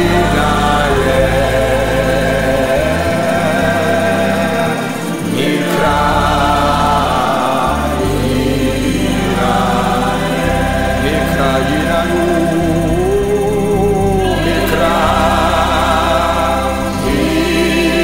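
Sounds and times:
choir singing: 0.0s - 18.0s
held bass notes: 0.0s - 18.0s.

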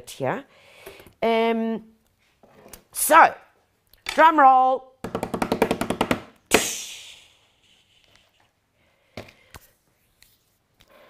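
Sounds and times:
loud sharp hit on table: 6.5s - 6.9s.

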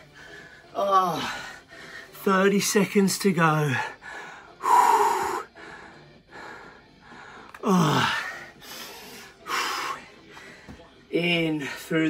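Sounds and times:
man breathing hard: 3.8s - 10.8s.

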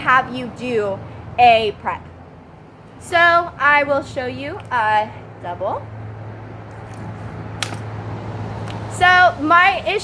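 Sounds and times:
rifle slapping into hands: 6.8s - 7.9s.

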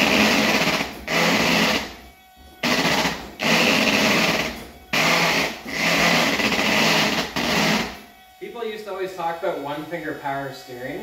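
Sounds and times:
power steering pump whirring: 0.0s - 11.0s.

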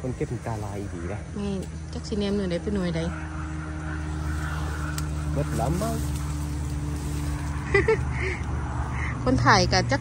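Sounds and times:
engine running with low hum: 0.0s - 10.0s.

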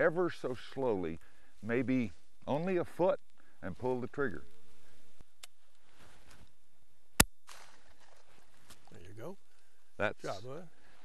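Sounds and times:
faint outdoor background: 0.0s - 11.0s
shotgun shot: 7.2s - 8.0s.

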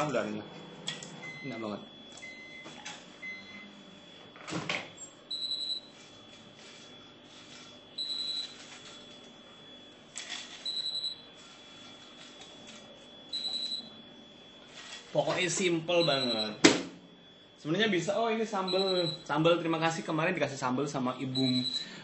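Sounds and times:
microwave short high beeps: 1.2s - 4.2s, 4.9s - 6.0s, 7.7s - 9.9s, 10.6s - 12.2s, 13.2s - 14.6s, 15.2s - 16.6s, 18.6s - 19.3s, 21.2s - 22.0s.

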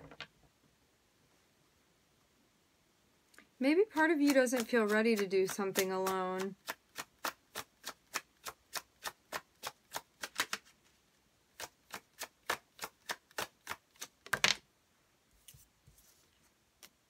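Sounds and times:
cards shuffling clicks: 4.0s - 10.7s.

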